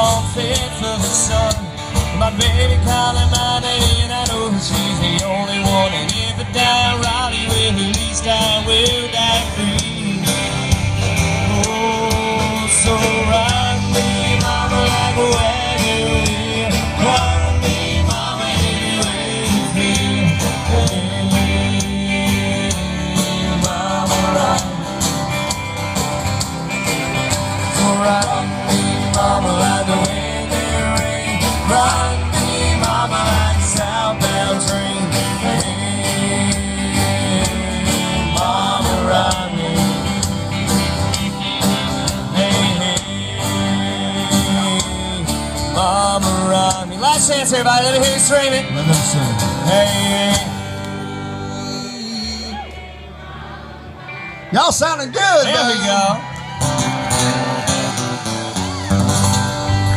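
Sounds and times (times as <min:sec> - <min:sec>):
country band playing live: 0:00.0 - 0:59.9.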